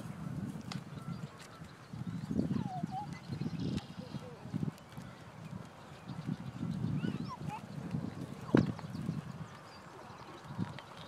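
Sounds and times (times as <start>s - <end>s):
footsteps on asphalt: 0.0s - 2.5s, 3.2s - 7.0s, 7.6s - 11.0s.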